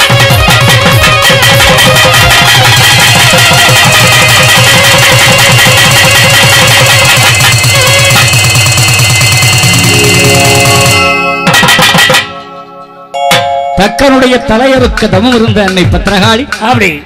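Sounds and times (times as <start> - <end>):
fast drum beat: 0.0 - 12.3, 14.4 - 17.0
electronic keyboards: 7.4 - 16.5
devotional band music: 9.5 - 15.1.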